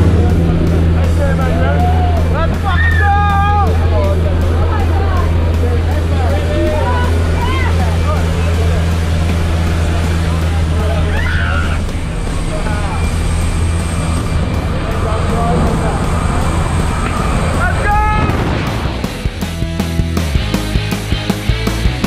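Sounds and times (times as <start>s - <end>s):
rough wind rush: 0.0s - 19.4s.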